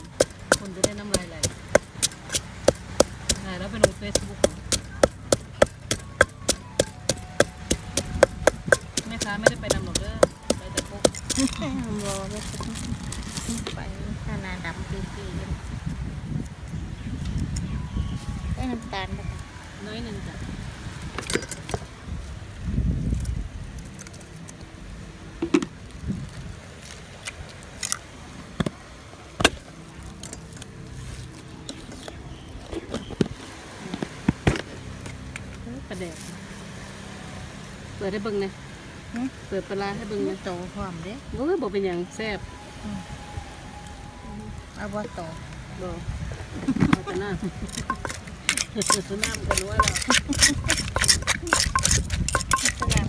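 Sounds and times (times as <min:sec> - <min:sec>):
wooden pestle pounding in mortar: 0:00.0 - 0:11.6, 0:47.7 - 0:53.0.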